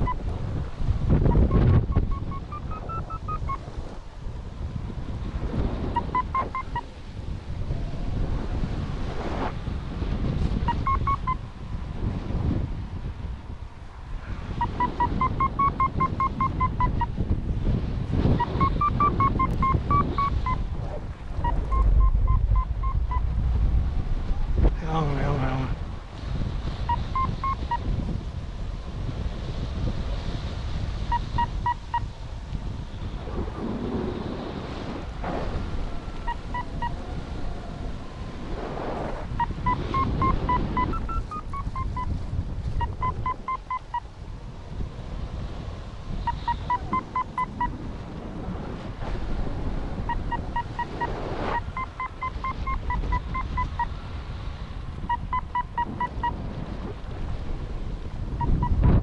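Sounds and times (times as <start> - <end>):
variometer beeping: 0.0 - 0.2, 1.3 - 3.6, 6.0 - 6.8, 10.7 - 11.4, 14.6 - 17.1, 18.4 - 20.6, 21.4 - 23.2, 26.9 - 27.8, 39.4 - 42.1, 42.8 - 44.0, 46.3 - 47.8, 50.1 - 53.9
wind rumbling on microphone: 0.0 - 59.0.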